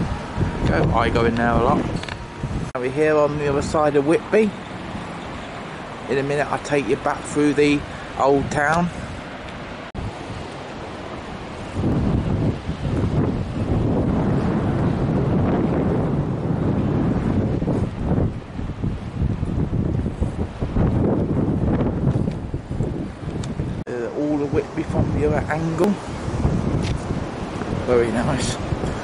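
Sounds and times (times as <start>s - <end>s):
waves breaking: 0.0s - 29.0s
wind buffeting microphone: 0.0s - 29.0s.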